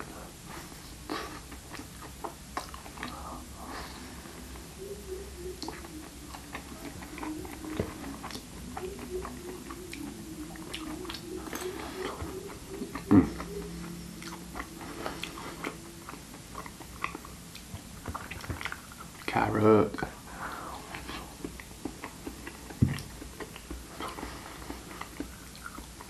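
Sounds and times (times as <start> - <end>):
chewing soft food: 0.0 - 26.0.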